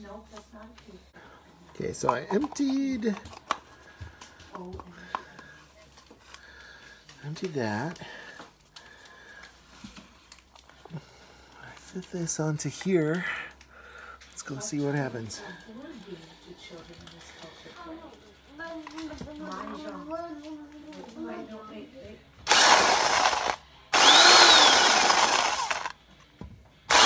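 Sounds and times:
coffee grinder grinding: 1.9 - 3.6, 22.5 - 26.0
electric drill humming: 22.5 - 26.0.

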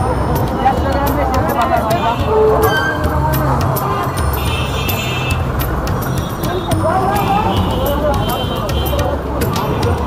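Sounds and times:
people's voices: 0.0 - 10.0
vehicle horn: 2.0 - 3.2.

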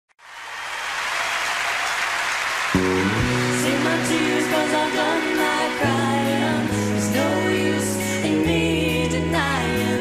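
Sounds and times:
audience applause: 0.2 - 7.4.

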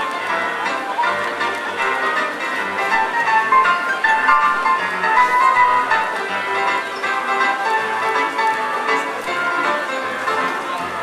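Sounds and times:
live concert music: 0.0 - 11.0.

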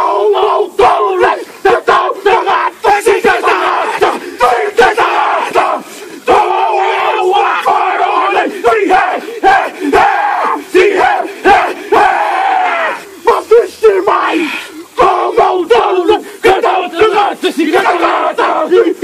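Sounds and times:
men chanting in unison: 0.0 - 19.0.

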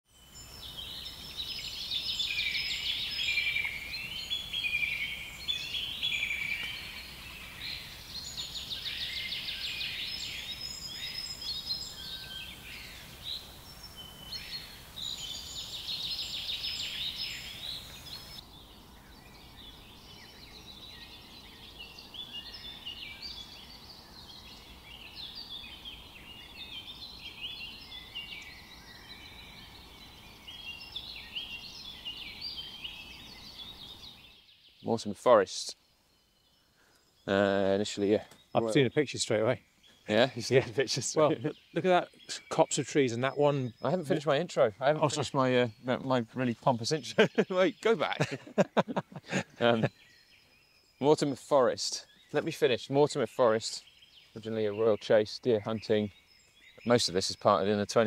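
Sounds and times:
birds singing: 0.1 - 58.0
chirping bird chorus: 0.1 - 58.0
loud trilling bird song: 0.1 - 58.0.

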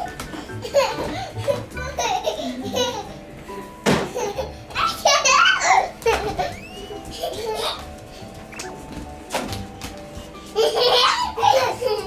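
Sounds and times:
toddler squealing laughter: 4.4 - 7.8, 10.6 - 12.0.

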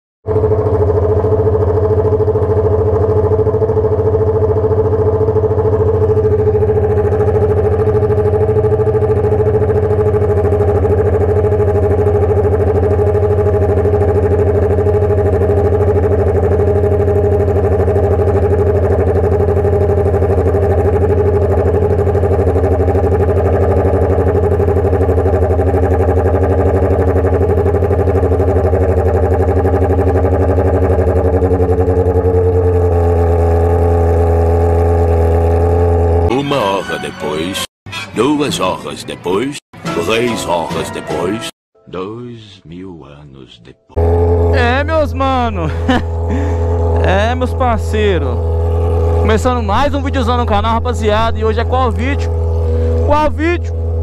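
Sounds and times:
motorcycle idling: 0.2 - 36.8, 43.9 - 54.0.

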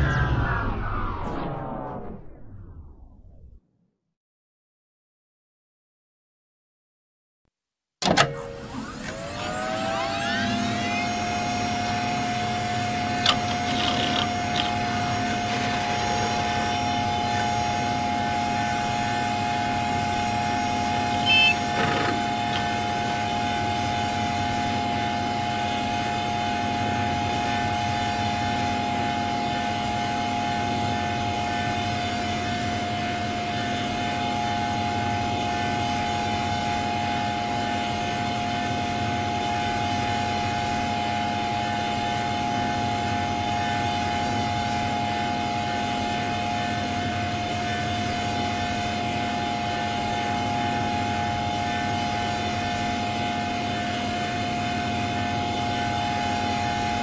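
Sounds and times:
distorted synthetic drone: 0.0 - 3.5, 9.2 - 32.3
loud electronic blip: 0.0 - 3.5, 21.2 - 22.7
electronic chirps: 21.0 - 23.0.

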